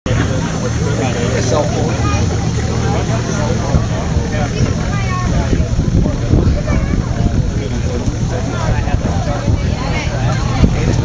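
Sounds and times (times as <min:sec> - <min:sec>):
truck engine rumbling: 0:00.0 - 0:11.0
crowd chatter: 0:00.1 - 0:11.0.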